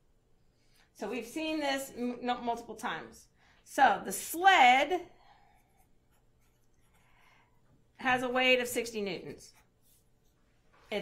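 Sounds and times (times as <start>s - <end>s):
marker writing on paper: 5.5s - 7.2s, 9.3s - 10.5s.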